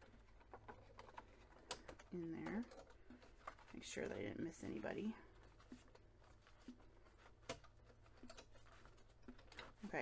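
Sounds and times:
paper pages handled: 0.0 - 10.0.

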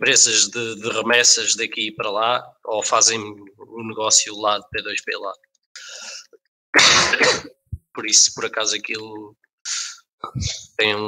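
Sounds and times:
person clearing throat: 6.8 - 7.6
person talking: 7.8 - 11.0.

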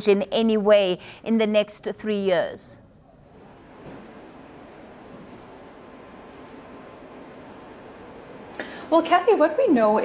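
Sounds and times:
steady low hiss: 0.0 - 10.0.

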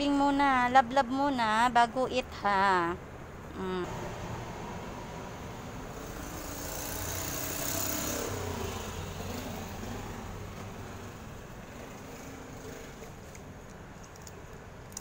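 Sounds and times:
vehicle passing by: 3.8 - 13.6.

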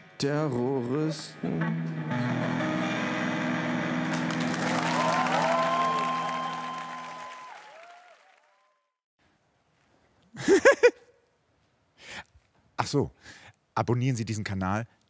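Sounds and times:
guitar chord ringing: 1.6 - 7.0
audience applause: 4.0 - 9.0
whistles: 4.9 - 8.8.

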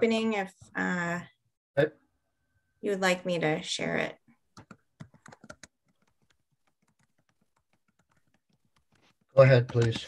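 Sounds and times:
keyboard key clicks: 9.6 - 10.0.

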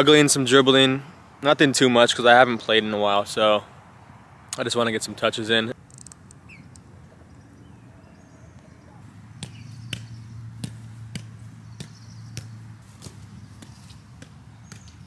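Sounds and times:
light taps of foot on ball: 9.4 - 15.0.

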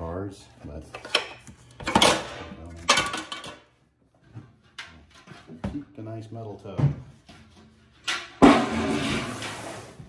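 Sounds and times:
metal tub clanging: 8.0 - 10.0.

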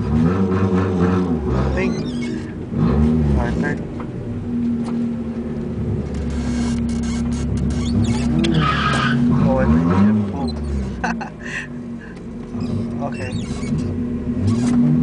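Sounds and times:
car engine from inside cabin: 0.0 - 15.0.

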